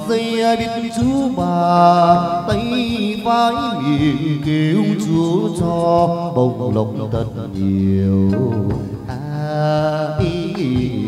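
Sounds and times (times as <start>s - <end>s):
instrumental accompaniment: 0.0s - 11.0s
chant-like singing: 0.1s - 11.0s.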